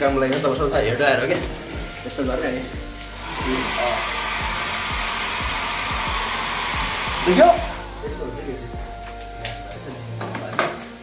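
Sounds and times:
hair dryer blowing: 0:01.1 - 0:10.3.

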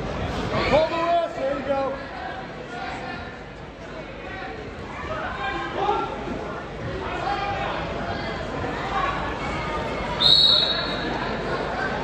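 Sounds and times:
crowd chatter: 0:00.0 - 0:12.0
referee's whistle blast: 0:10.2 - 0:11.0.

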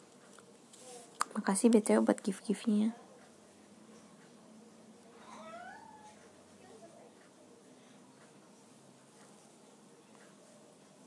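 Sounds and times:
cat meowing: 0:05.2 - 0:06.2.

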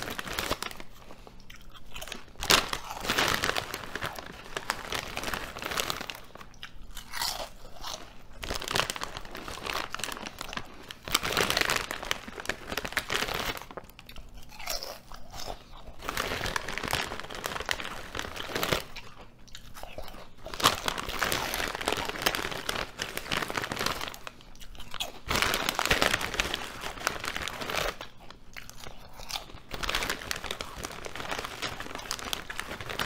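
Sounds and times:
crunching and chewing potato chips: 0:00.0 - 0:33.0.

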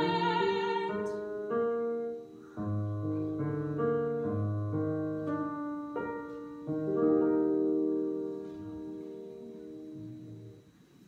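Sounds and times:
slow piano melody: 0:00.0 - 0:11.0.

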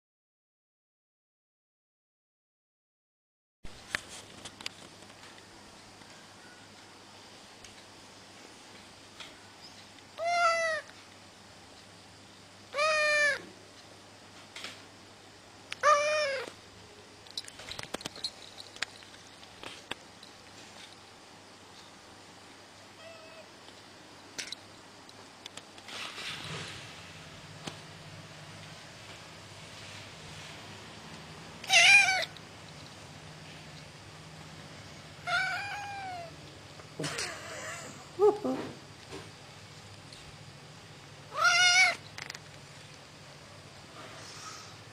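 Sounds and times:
cat meowing: 0:10.2 - 0:10.9, 0:12.8 - 0:13.5, 0:15.8 - 0:16.5, 0:23.0 - 0:23.5, 0:31.6 - 0:32.4, 0:35.2 - 0:36.4, 0:41.3 - 0:42.0.

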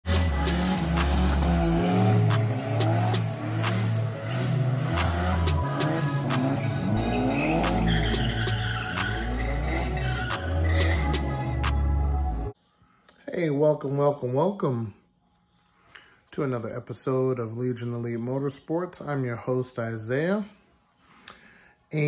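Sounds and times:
car engine revving: 0:00.0 - 0:12.4
music with steady beat: 0:00.0 - 0:12.5
tyres squealing: 0:00.1 - 0:11.3.

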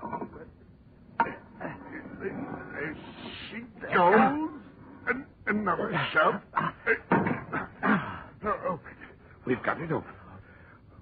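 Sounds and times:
men grunting with effort: 0:05.9 - 0:08.9.

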